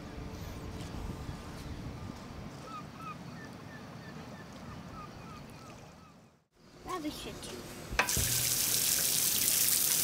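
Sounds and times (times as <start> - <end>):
water spraying onto concrete: 8.0 - 10.0.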